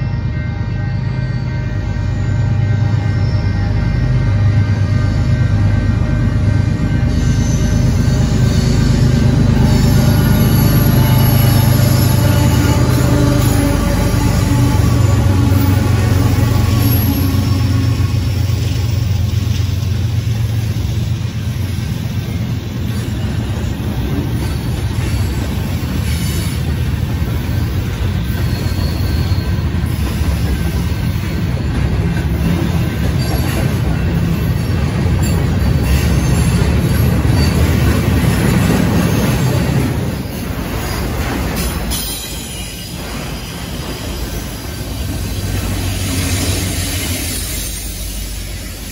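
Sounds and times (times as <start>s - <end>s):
diesel locomotive engines: 0.0s - 48.9s
freight cars rumbling on rails: 0.0s - 48.9s.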